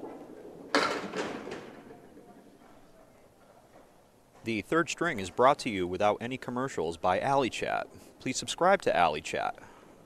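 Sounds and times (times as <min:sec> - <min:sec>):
pins crashing and clattering: 0:00.0 - 0:02.2
bowling ball rolling on wooden lane: 0:00.0 - 0:03.0.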